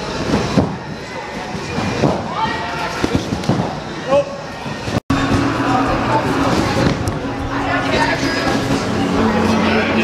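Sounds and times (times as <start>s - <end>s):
people's voices: 0.8s - 10.0s.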